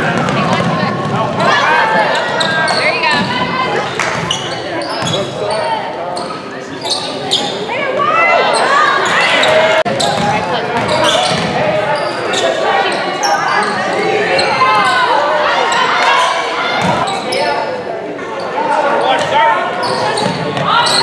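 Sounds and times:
people calling out and shouting: 0:00.0 - 0:21.0
sneakers squeaking: 0:00.1 - 0:17.8, 0:18.4 - 0:21.0.

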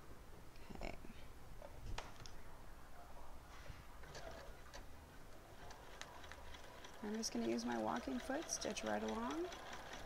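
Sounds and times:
sewing machine hum: 0:05.5 - 0:10.0
sewing machine ticking: 0:05.8 - 0:10.0.

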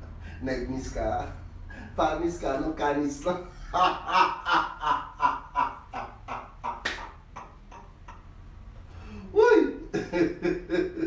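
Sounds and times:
man laughing heartily: 0:03.6 - 0:08.3, 0:09.4 - 0:11.0
sharp clap: 0:06.6 - 0:07.6.

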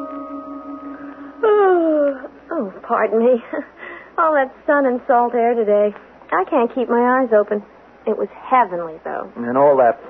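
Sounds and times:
held music chord: 0:00.0 - 0:02.6.

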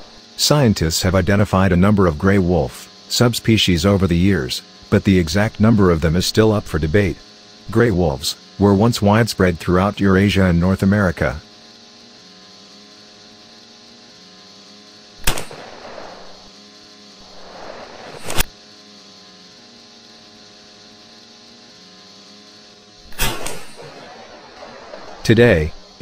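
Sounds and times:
steady engine drone: 0:00.0 - 0:26.0
gunshots: 0:15.2 - 0:16.4, 0:23.1 - 0:25.8.

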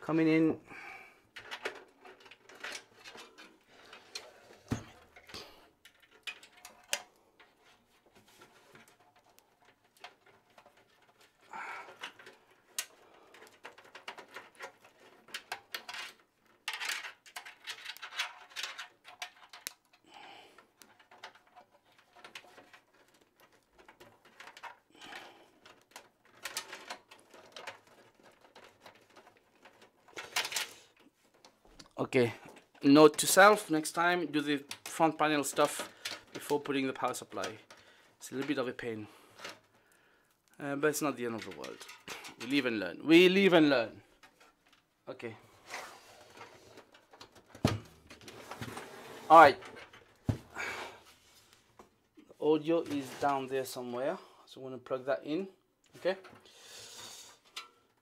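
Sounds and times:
rustling: 0:43.4 - 0:54.0.

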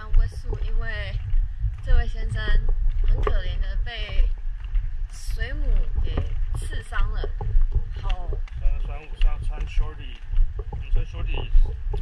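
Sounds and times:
woman talking: 0:00.0 - 0:01.2, 0:01.8 - 0:04.4, 0:05.1 - 0:08.4
low wind rumble on microphone: 0:00.0 - 0:12.0.

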